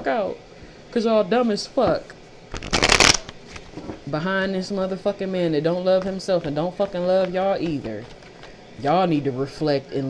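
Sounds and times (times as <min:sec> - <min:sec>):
cards being shuffled: 0:02.5 - 0:03.7.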